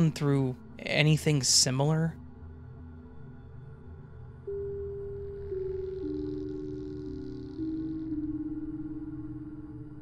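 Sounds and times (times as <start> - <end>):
low hum with high shimmer: 0.0 - 10.0
slow ambient music: 0.0 - 10.0.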